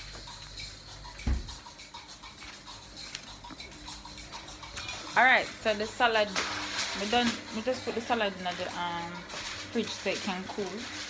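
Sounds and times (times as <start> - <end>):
kitchen room noise: 0.0 - 11.0
low thump: 1.2 - 1.6.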